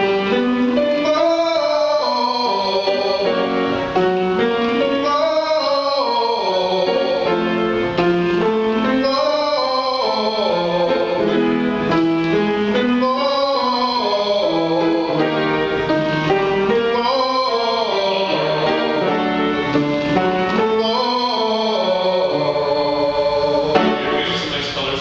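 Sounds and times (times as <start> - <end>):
piano accompaniment: 0.0 - 25.0
man singing vocal exercise: 0.9 - 3.5, 4.8 - 7.4, 9.0 - 11.4, 12.8 - 15.4, 16.8 - 19.2, 20.6 - 25.0.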